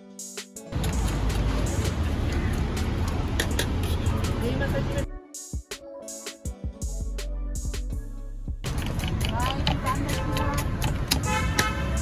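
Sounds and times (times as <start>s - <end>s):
knife chopping on wooden board: 8.7s - 11.8s.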